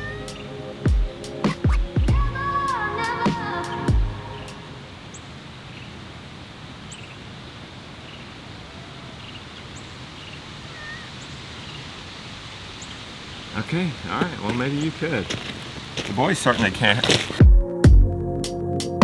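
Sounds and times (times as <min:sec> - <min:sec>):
open air hiss: 0:00.0 - 0:17.4
faint high chirps: 0:08.1 - 0:11.9
man's voice: 0:13.6 - 0:15.4, 0:16.0 - 0:17.4.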